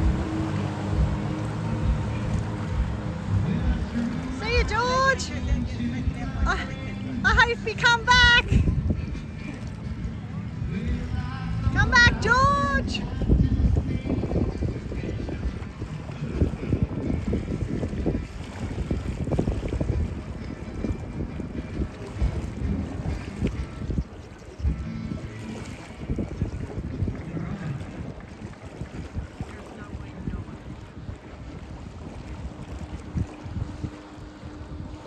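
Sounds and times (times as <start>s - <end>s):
electric jetboard skimming water: 0.0s - 35.0s
wind buffeting microphone: 0.0s - 35.0s.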